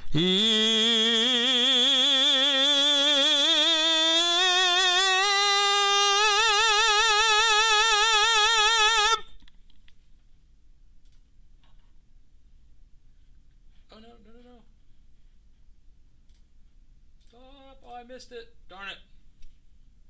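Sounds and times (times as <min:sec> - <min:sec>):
man singing sustained vowel: 0:00.0 - 0:09.2
faint clicks: 0:11.0 - 0:11.8.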